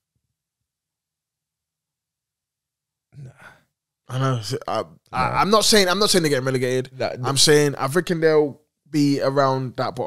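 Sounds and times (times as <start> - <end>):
man sighing: 3.2 - 3.7.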